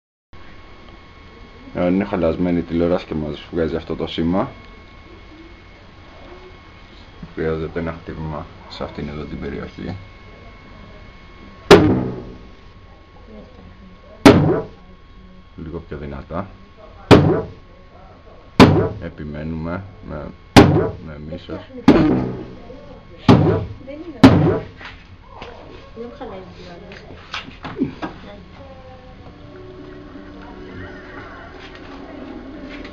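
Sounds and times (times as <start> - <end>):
voice from television: 27.8 - 32.9
television music: 28.8 - 32.9.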